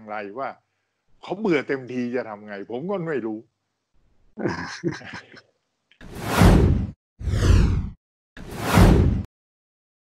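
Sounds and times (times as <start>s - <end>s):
whoosh sound effects: 6.0s - 9.3s.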